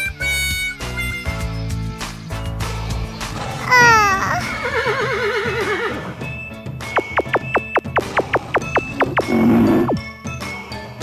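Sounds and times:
background music: 0:00.0 - 0:11.0
horse whinny: 0:03.6 - 0:06.2.

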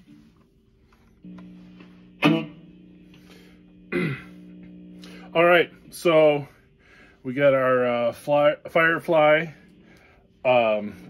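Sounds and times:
electric guitar chord ringing: 0:01.2 - 0:06.5.

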